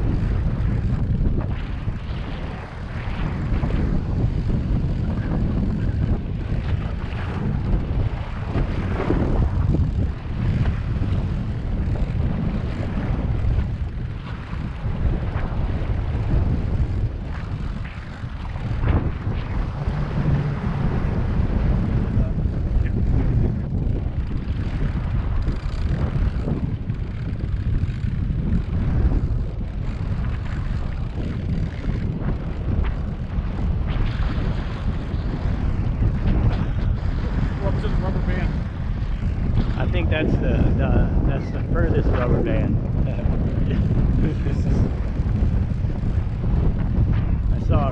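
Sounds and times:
outboard boat motors running: 0.0s - 47.9s
wind buffeting microphone: 0.0s - 47.9s.

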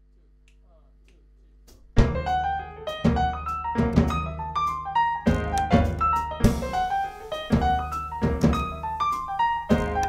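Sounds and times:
low electrical hum: 0.0s - 2.0s
finger snaps: 0.4s - 1.9s
jazz trio playing: 2.0s - 10.0s.

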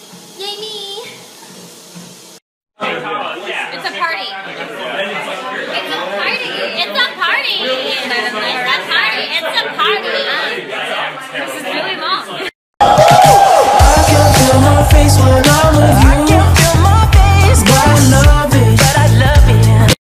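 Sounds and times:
party chatter: 2.8s - 12.5s, 13.7s - 19.3s.

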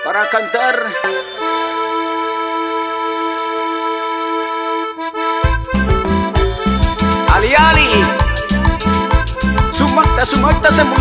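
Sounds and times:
keyboard sustained chord: 0.7s - 10.0s
drums and bass dance beat: 5.4s - 11.0s.

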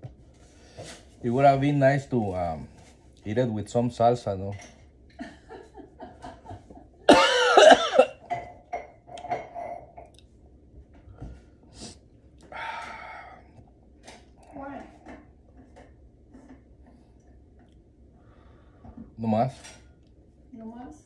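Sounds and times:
man coughing: 7.1s - 8.4s.

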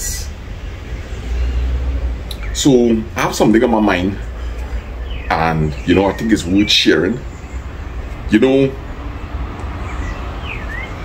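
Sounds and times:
bird chirping and whistling: 9.8s - 11.0s.

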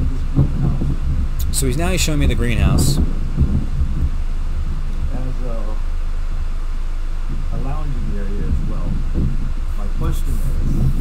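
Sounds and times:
steady low hum: 0.0s - 11.0s
wind buffeting microphone: 0.0s - 11.0s.

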